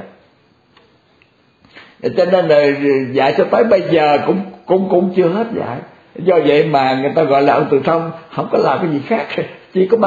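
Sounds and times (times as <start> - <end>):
faint steady hiss: 0.0 - 10.0
short breath: 1.7 - 2.0.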